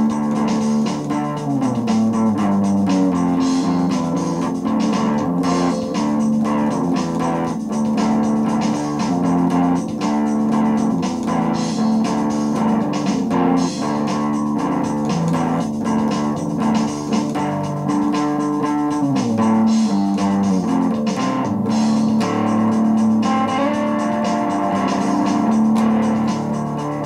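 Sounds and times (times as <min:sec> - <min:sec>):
drum machine beat: 0:00.0 - 0:27.0
electric guitar blues-rock: 0:00.0 - 0:27.0.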